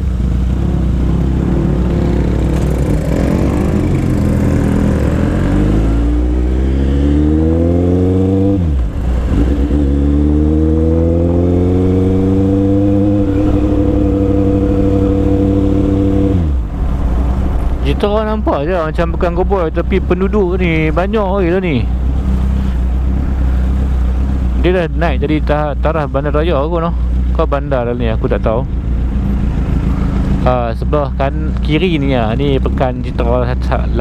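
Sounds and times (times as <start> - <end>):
motorcycle engine accelerating: 0.0 - 28.0.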